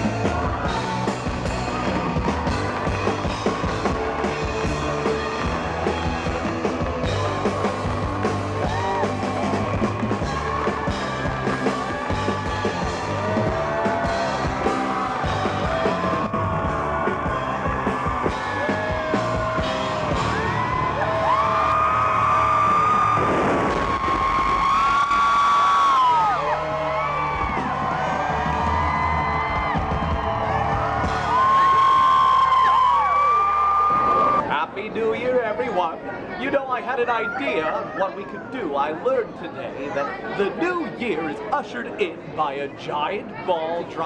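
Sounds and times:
live rock-pop band: 0.0 - 32.6
burst of noise: 22.2 - 25.7.

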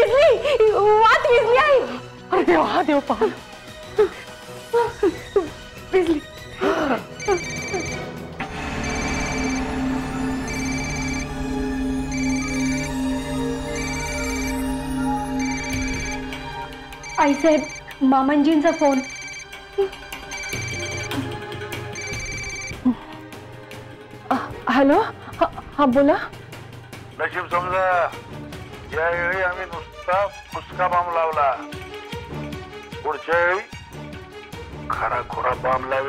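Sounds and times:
dramatic background music: 0.0 - 36.0
electronic ringtone trilling: 7.2 - 19.6, 20.2 - 21.2, 22.0 - 22.8.

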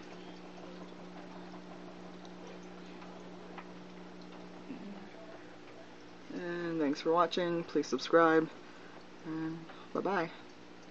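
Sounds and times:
aquarium filter humming: 0.0 - 10.9.

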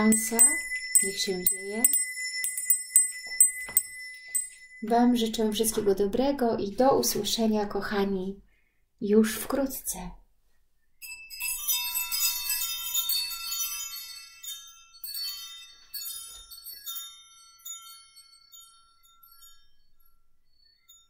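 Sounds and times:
metallic chimes ringing: 0.0 - 6.0, 11.0 - 21.0.

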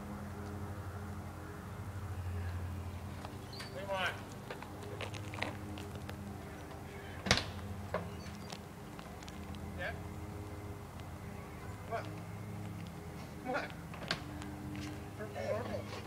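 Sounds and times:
steady low hum: 0.0 - 16.0
faint indistinct voices: 1.6 - 16.0.

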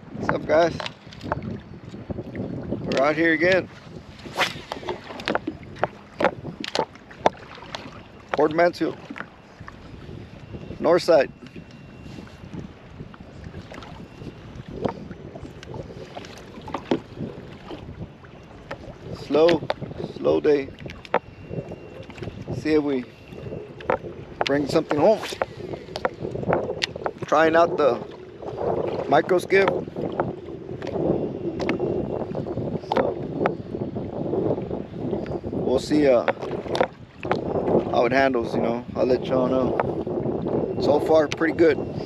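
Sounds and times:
water against boat hull: 0.0 - 42.0
wind on microphone: 0.0 - 42.0.

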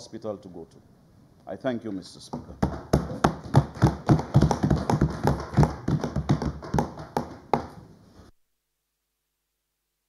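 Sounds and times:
hands thumping on wooden desks: 2.3 - 7.8.

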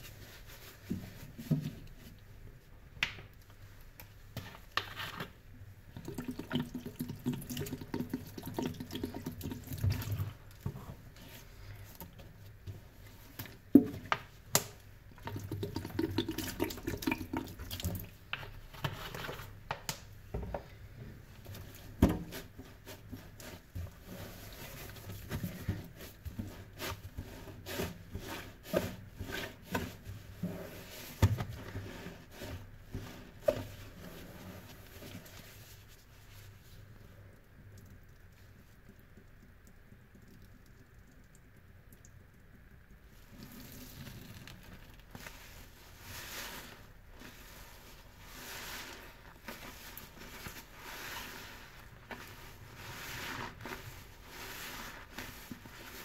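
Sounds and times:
soapy sponge squishing on sink: 0.0 - 2.8, 4.2 - 19.7, 21.1 - 40.8, 42.5 - 56.0.

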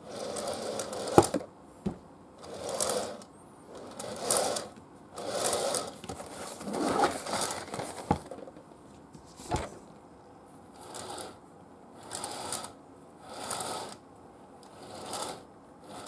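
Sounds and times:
cardboard box rubbing and sliding: 5.8 - 8.3.

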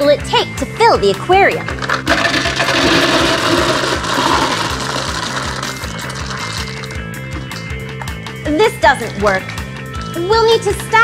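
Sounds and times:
background music with steady beat: 0.0 - 11.0
wooden cubes clattering on glass: 1.6 - 7.0.

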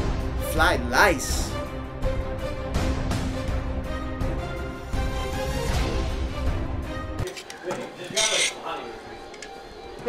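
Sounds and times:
metal spatulas scraping in wok: 7.2 - 8.7.

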